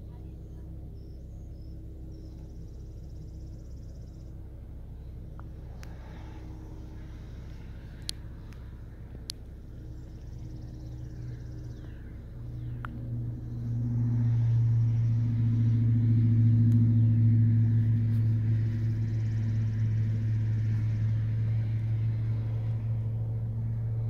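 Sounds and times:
car engine drone: 0:00.0 - 0:24.0
road noise: 0:00.0 - 0:24.0.

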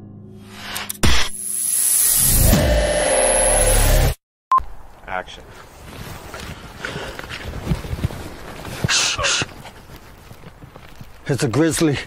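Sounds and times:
thin high whine: 0:00.4 - 0:04.2.

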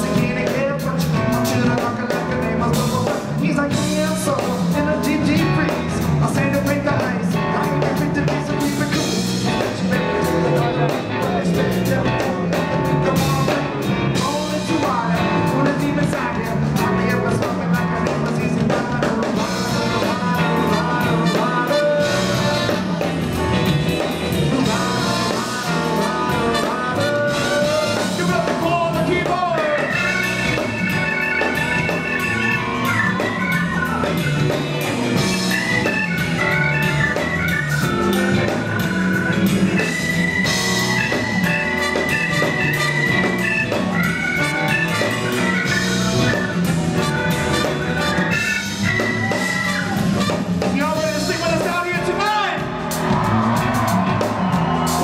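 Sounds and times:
bass and drums: 0:00.0 - 0:55.0
organ keyboard solo: 0:00.0 - 0:55.0.

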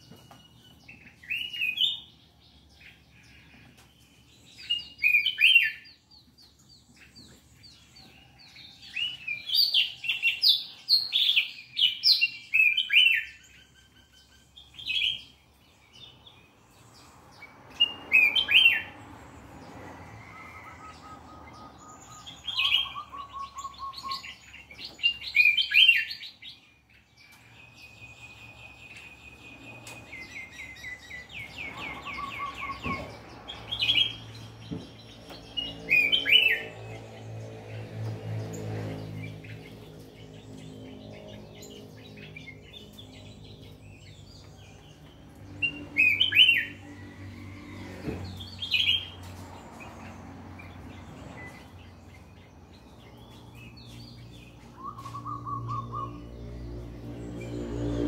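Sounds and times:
songbird chirping and trilling: 0:00.0 - 0:58.0.

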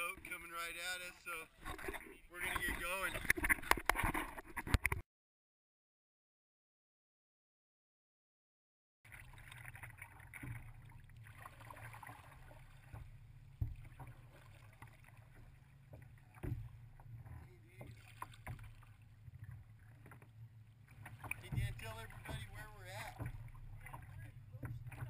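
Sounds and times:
muffled rumble of water and wind: 0:00.0 - 0:05.0, 0:09.1 - 0:25.0
paddle knocks: 0:12.8 - 0:25.0.

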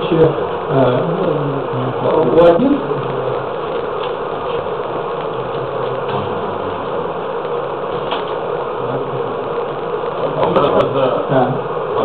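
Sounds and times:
steady buzzing hum: 0:00.0 - 0:12.0.

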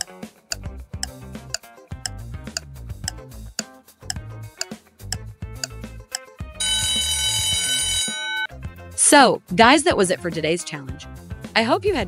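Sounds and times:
background music: 0:00.0 - 0:12.0
alarm clock ringing: 0:06.6 - 0:08.5.

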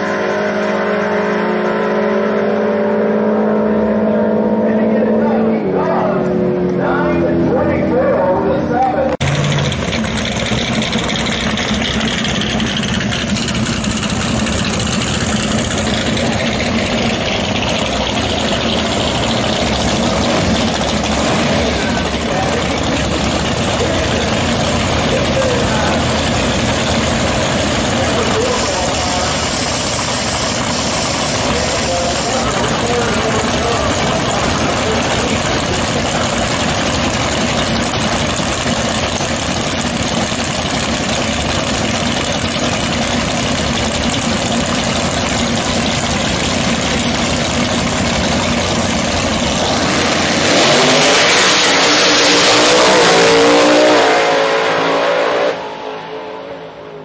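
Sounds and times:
drag car engines revving: 0:00.0 - 0:57.0.

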